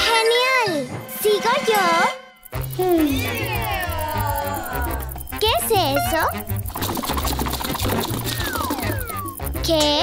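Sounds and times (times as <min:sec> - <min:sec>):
background music: 0:00.0 - 0:10.0
toy motor mechanical rattle: 0:02.4 - 0:10.0
descending whistle: 0:02.9 - 0:05.4.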